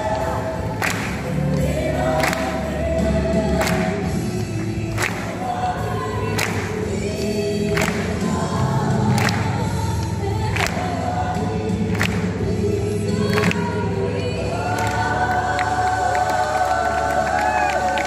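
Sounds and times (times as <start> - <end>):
choir singing long notes: 0.0 - 9.6, 10.5 - 18.0.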